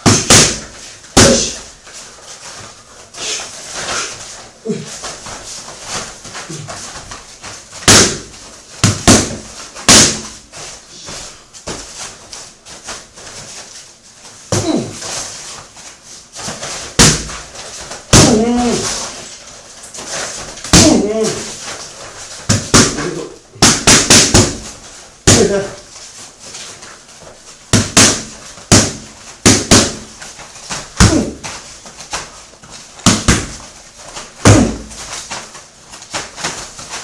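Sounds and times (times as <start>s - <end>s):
strikes slapping on mitts: 0.0s - 1.7s, 7.8s - 10.4s, 16.4s - 19.1s, 22.5s - 25.8s, 27.7s - 30.1s, 33.0s - 33.6s, 34.4s - 35.4s
boxing gloves smacking pads: 0.0s - 1.8s, 4.7s - 12.1s, 14.5s - 15.0s, 16.4s - 19.3s, 20.0s - 25.8s, 27.7s - 37.0s.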